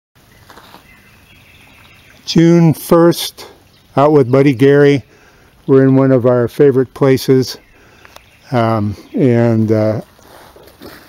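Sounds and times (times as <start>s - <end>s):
distant bird calls: 0.2s - 11.0s
low steady background hiss: 0.2s - 11.0s.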